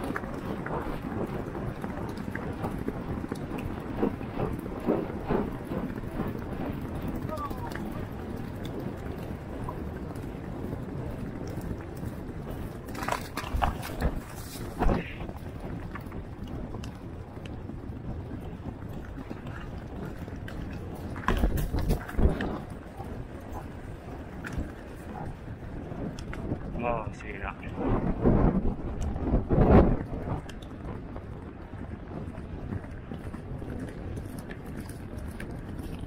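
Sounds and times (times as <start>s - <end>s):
horse hoofbeats on turf: 0.0s - 26.6s
wind noise on microphone: 0.0s - 36.0s.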